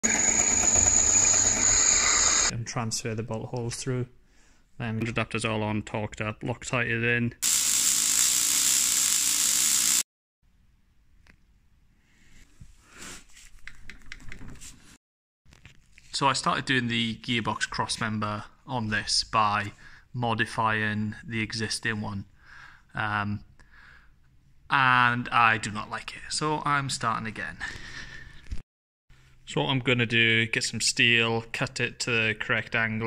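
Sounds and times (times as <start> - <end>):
drill cutting steel: 0.0 - 2.5, 7.4 - 10.0.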